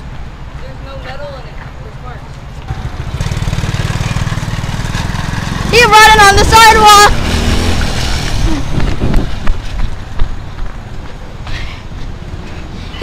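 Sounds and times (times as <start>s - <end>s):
quad bike engine running: 2.7s - 9.2s.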